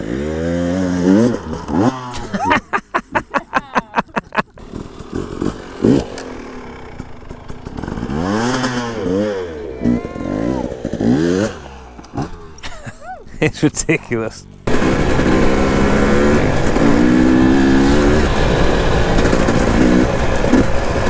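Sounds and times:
dirt bike engine revving: 0.0 - 13.0, 13.6 - 21.0.

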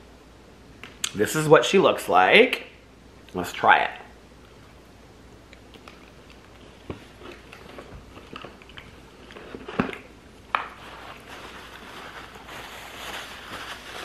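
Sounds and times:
wet mouth clicks: 5.5 - 6.6
man chewing: 5.5 - 9.9.

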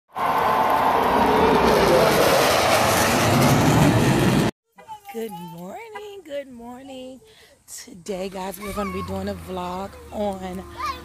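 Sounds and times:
crowd cheering: 0.1 - 3.4
jet flyover noise: 0.1 - 4.5.

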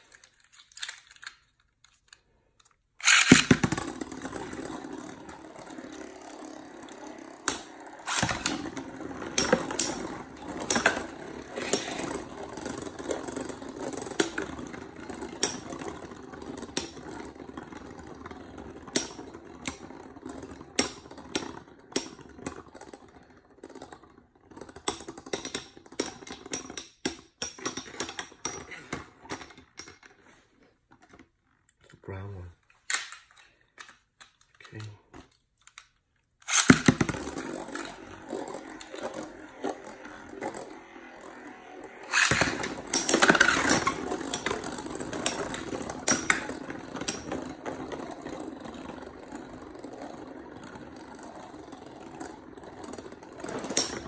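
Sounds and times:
spinning tops clashing clicks: 3.0 - 12.3, 36.4 - 47.4, 53.4 - 54.0
spinning tops whirring: 3.0 - 26.7, 36.4 - 54.0.

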